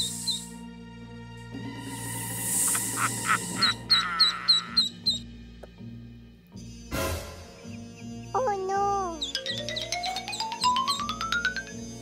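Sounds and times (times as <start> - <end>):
background music: 0.0 - 12.0
ducklings peeping: 2.7 - 5.3.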